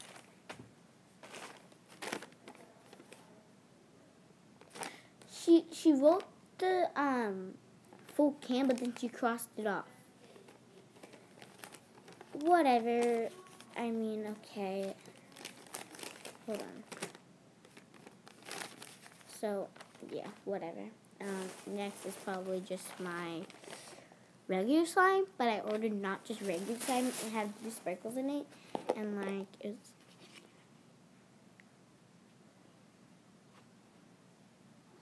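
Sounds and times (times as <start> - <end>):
paper rustling and crinkling: 0.0 - 0.6, 1.2 - 3.2, 4.6 - 5.0, 7.9 - 9.2, 10.2 - 20.5, 21.2 - 24.0, 25.6 - 28.3, 30.0 - 30.6
plastic tub being handled: 1.2 - 3.3, 21.2 - 24.0, 25.6 - 28.1.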